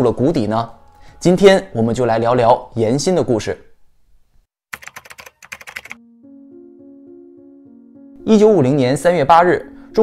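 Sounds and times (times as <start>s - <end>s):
keyboard typing clicks: 4.7s - 6.0s.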